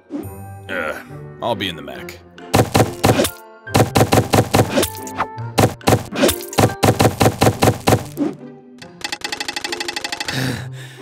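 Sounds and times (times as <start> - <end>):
background music: 0.0 - 11.0
rapid rattling hits: 2.6 - 8.2
quick cartoon thunks: 2.6 - 8.4.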